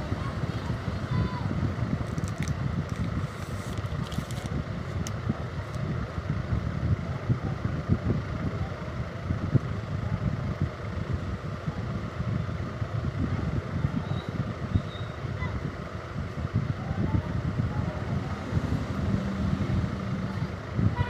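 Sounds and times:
low background rumble: 0.0s - 21.0s.

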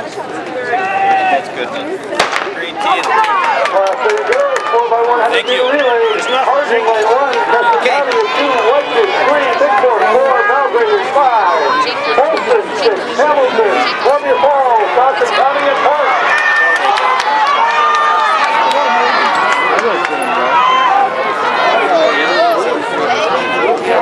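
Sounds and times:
spectators shouting and cheering: 0.0s - 24.0s.

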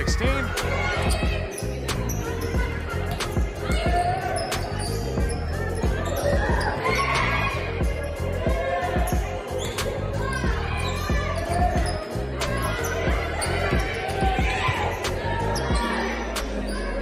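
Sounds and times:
music: 0.0s - 17.0s
voices: 0.0s - 17.0s.

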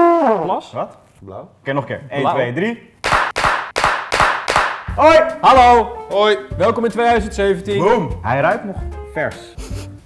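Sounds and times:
people clapping in rhythm: 3.0s - 4.9s.

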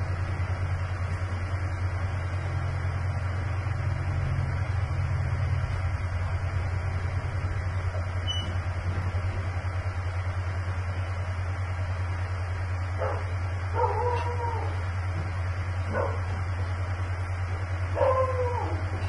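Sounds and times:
dog whining and yipping: 13.8s - 14.8s, 18.0s - 19.0s.

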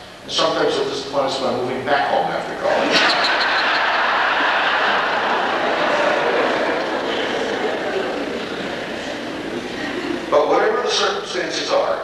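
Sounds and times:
audience laughing: 2.6s - 10.3s.

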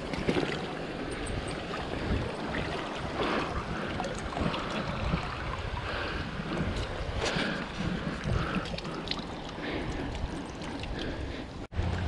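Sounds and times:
stream water sloshing and splashing: 0.0s - 12.0s.

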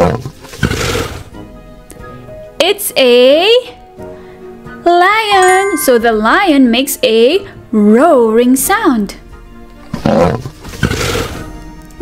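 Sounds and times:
light background music: 0.0s - 12.0s
lion roar: 9.9s - 11.4s.

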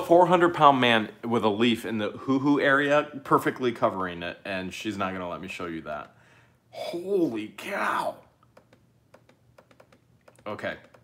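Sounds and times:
laptop keys clicking: 8.5s - 11.0s.

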